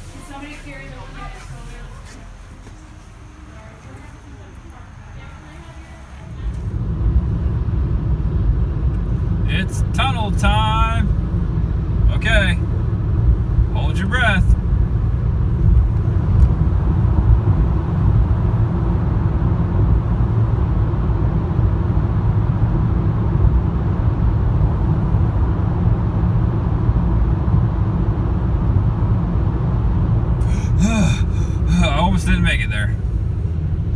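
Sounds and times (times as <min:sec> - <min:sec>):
car interior road rumble: 0:00.0 - 0:33.9.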